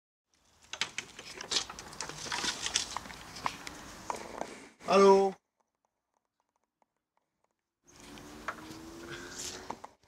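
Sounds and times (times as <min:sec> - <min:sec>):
rustling: 0:00.4 - 0:04.7.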